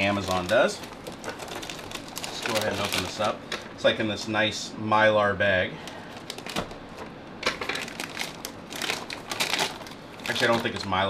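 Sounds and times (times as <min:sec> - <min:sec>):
plastic bag crinkling and tearing: 0:00.0 - 0:03.8, 0:05.8 - 0:11.0.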